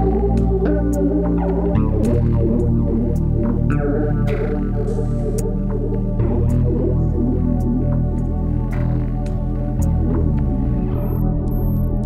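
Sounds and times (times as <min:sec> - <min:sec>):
backing track: 0:00.0 - 0:12.0
fretless bass plucked notes: 0:00.0 - 0:12.0.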